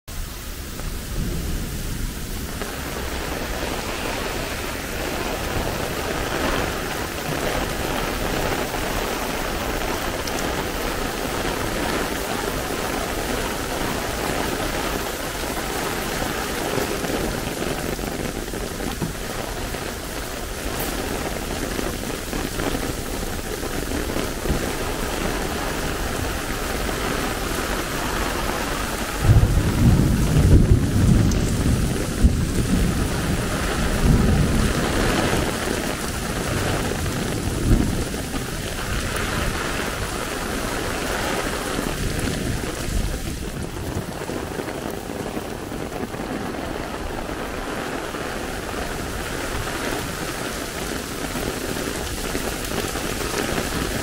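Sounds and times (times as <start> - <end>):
heavy rain on pavement: 0.0 - 54.0
thunder rumbling: 0.1 - 54.0.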